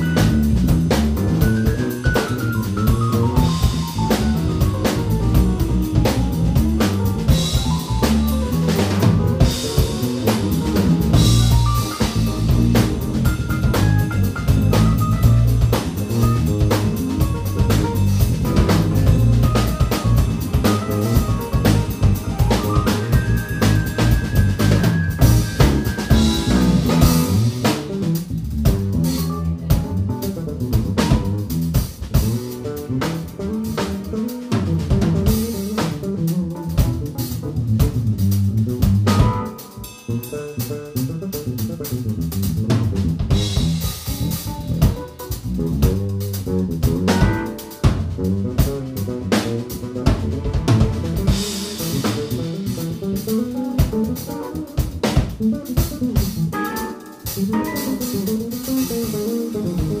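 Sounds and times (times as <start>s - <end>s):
busy bass line: 0.0s - 60.0s
drum kit: 0.0s - 60.0s.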